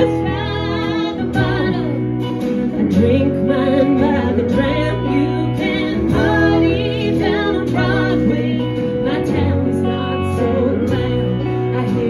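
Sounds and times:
electric guitar: 0:00.0 - 0:12.0
strummed acoustic guitar: 0:00.0 - 0:12.0
woman singing: 0:00.0 - 0:12.0.

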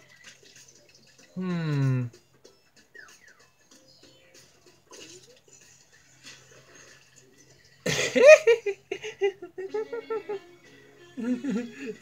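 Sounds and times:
quiet cartoon music: 0:00.0 - 0:12.0.

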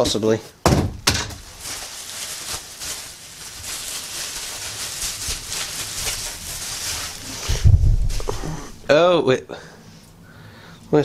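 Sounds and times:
bubble wrap crinkling: 0:01.0 - 0:08.9
dull low thump: 0:07.5 - 0:08.4.

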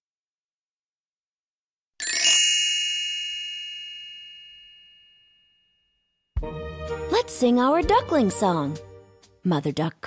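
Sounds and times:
bell-like ding: 0:02.1 - 0:06.2.

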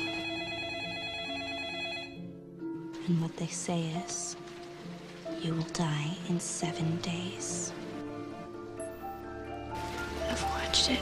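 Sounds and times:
telephone ringing warble: 0:00.0 - 0:02.2.

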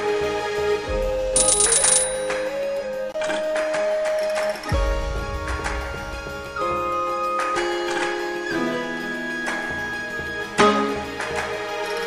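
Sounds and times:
slot game background music: 0:00.9 - 0:12.0.

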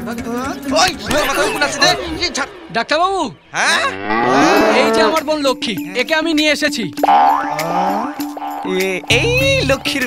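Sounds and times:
cow mooing: 0:03.7 - 0:05.2, 0:07.6 - 0:08.3.

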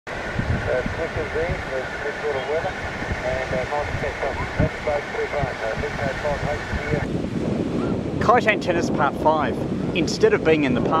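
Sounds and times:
wind buffeting microphone: 0:00.1 - 0:11.0
voice through radio speaker: 0:00.6 - 0:07.1.

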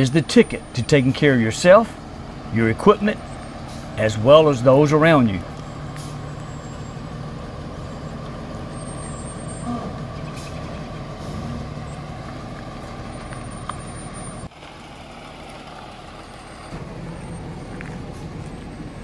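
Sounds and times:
motorhome engine running low: 0:00.0 - 0:19.0.

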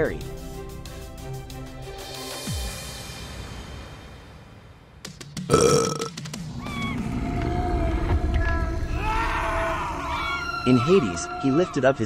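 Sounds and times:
wailing cries: 0:08.9 - 0:12.0.

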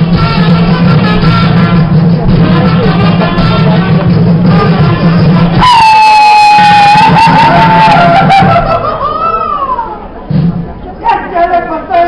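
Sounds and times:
live folk band music: 0:00.0 - 0:12.0.

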